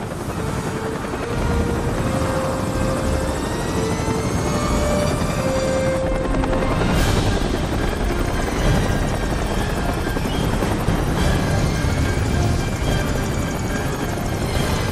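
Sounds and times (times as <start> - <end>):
film score held notes: 0.0 - 14.9
helicopter rotor and engine: 0.0 - 14.9.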